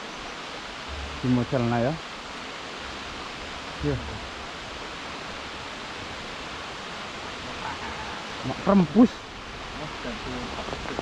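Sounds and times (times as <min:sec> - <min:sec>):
rush of flowing water: 0:00.0 - 0:11.0.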